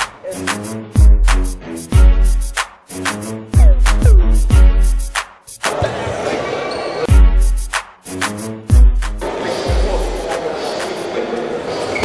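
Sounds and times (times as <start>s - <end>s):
music with heavy bass drum: 3.6s - 5.2s, 8.7s - 10.2s.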